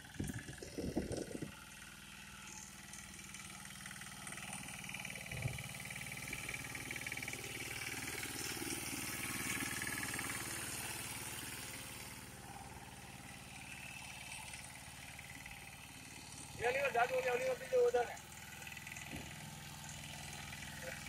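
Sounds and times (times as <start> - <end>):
tiller engine running: 0.0 - 21.0.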